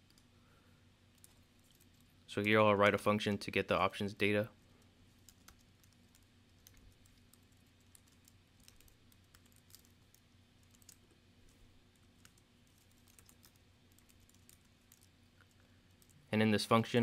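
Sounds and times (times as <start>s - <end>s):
low steady hum: 0.0s - 17.0s
keyboard typing: 5.1s - 16.2s.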